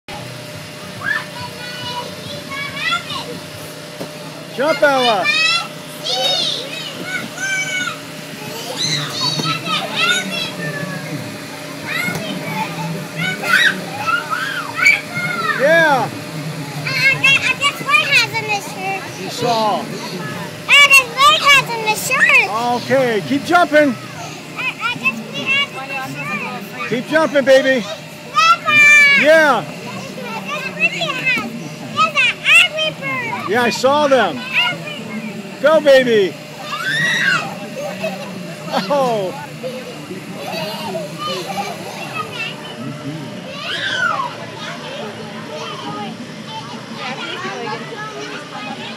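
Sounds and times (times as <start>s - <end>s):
steady low hum: 0.1s - 48.9s
children squealing and calling out: 1.0s - 3.3s, 5.1s - 11.1s, 11.8s - 15.7s, 27.8s - 33.5s, 36.6s - 42.8s, 43.4s - 48.9s.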